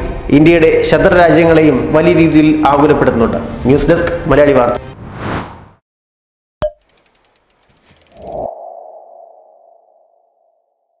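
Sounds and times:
quick ticks: 6.7 - 8.5.

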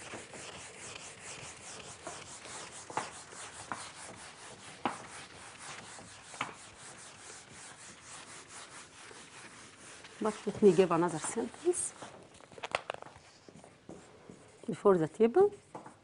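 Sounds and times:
rubbing strokes on whiteboard: 0.0 - 12.2, 13.2 - 15.0.

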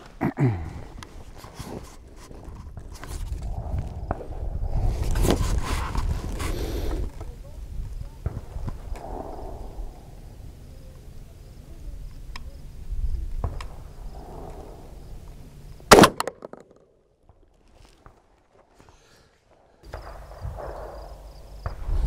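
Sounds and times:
shotgun blast: 15.9 - 16.6.

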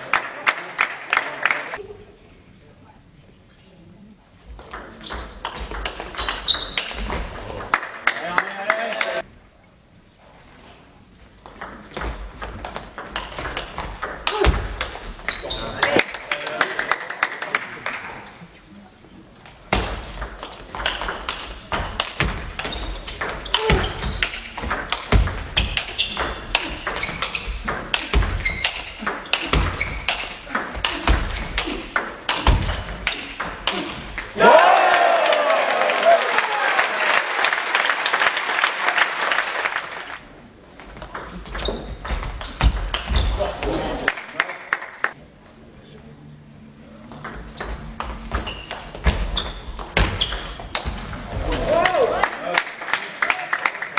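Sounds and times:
crowd cheering and applauding: 34.4 - 40.2.

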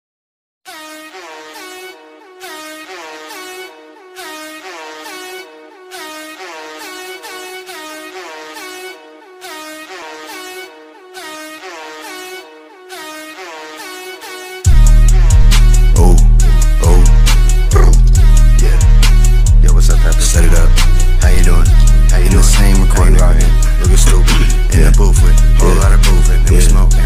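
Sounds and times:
repeating trap lead melody: 0.7 - 27.0.

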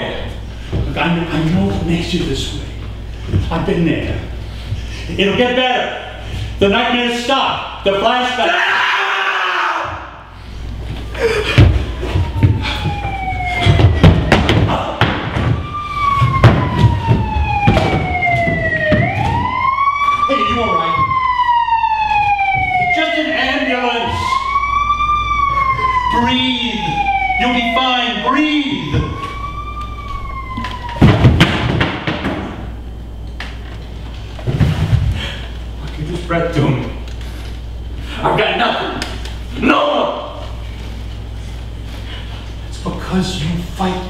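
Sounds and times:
police siren wailing: 10.8 - 31.8.

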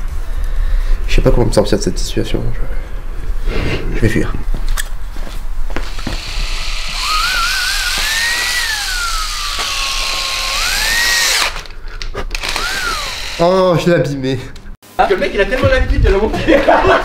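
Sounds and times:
cordless drill whining: 5.8 - 13.7.

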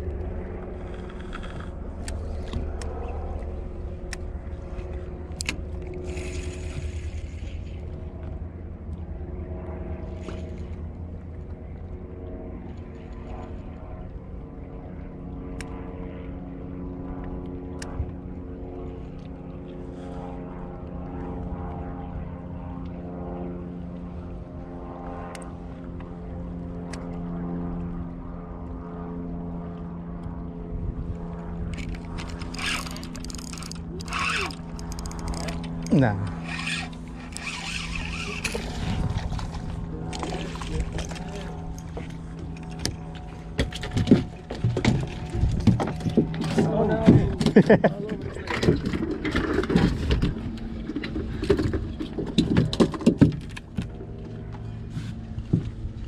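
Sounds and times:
boat motor rumbling: 0.0 - 56.0.

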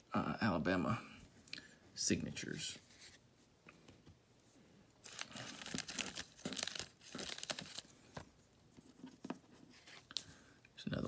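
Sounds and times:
plastic sleeve crinkling: 5.0 - 8.3.

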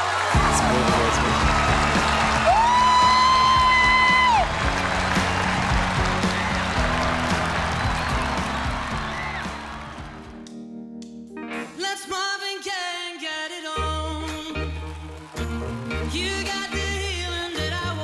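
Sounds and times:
audience applauding and cheering: 0.0 - 10.6, 13.8 - 18.0
background music: 0.0 - 18.0.

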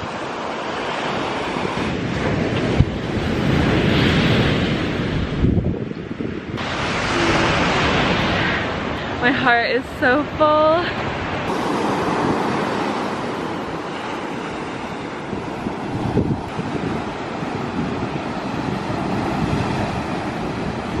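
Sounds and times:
ocean surf breaking on beach: 0.0 - 21.0
wind on microphone: 0.0 - 21.0.

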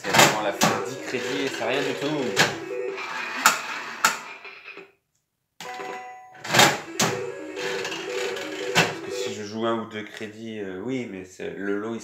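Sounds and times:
slot machine electronic beeping tune: 0.4 - 4.0, 6.7 - 9.5.

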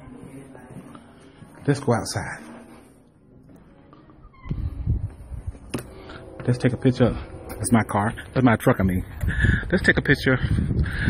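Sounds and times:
door squeak: 4.2 - 5.1.

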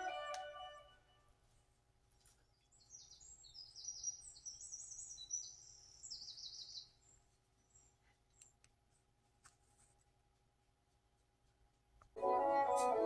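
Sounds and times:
small bird chirping and trilling: 2.5 - 7.9.

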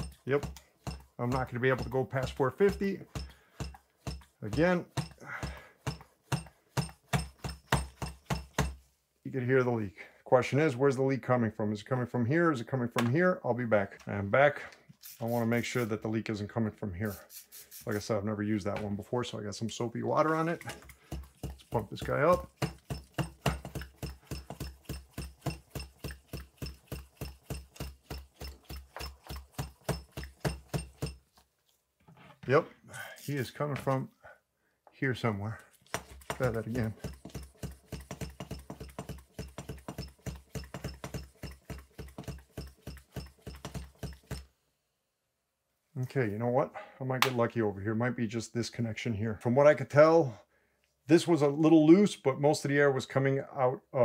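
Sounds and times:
shock pump strokes: 20.2 - 31.2, 35.7 - 44.5.

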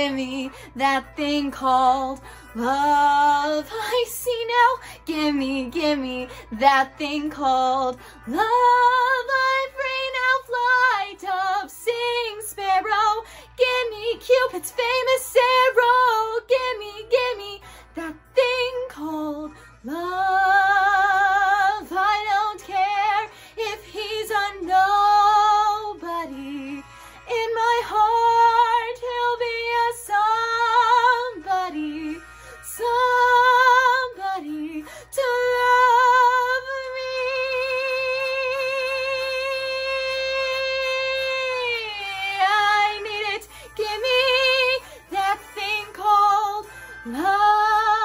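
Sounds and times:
woman singing with vibrato: 0.0 - 48.0.

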